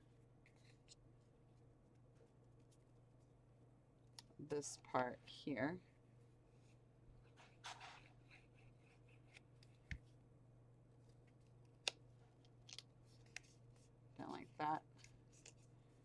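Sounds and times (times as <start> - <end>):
steady low hum: 0.0 - 16.0
paper rustling: 15.0 - 15.7.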